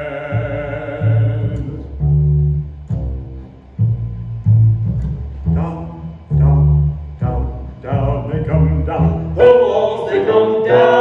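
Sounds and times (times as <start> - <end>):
men singing a chord: 0.0 - 1.8, 7.4 - 11.0
double bass plucked: 0.0 - 11.0.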